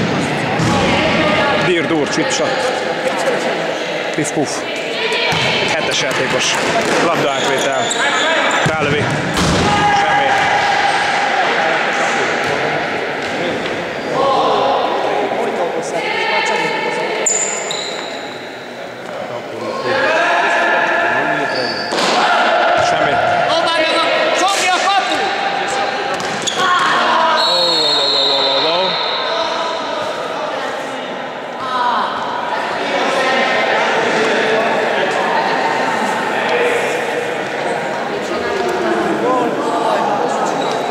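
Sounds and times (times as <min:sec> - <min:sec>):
players shouting: 0:00.0 - 0:18.4, 0:19.6 - 0:40.9.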